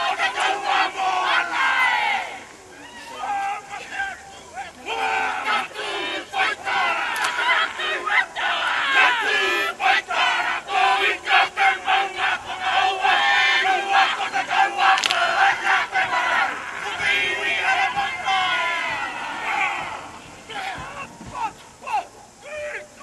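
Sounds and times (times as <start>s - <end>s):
many voices chanting in unison: 0.0s - 23.0s.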